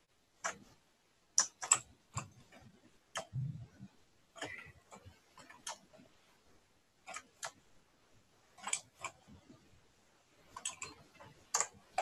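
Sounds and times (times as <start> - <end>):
mouse and keyboard clicks: 0.4 - 0.7, 1.4 - 3.4, 4.4 - 5.9, 7.0 - 7.6, 8.6 - 9.2, 10.5 - 12.0.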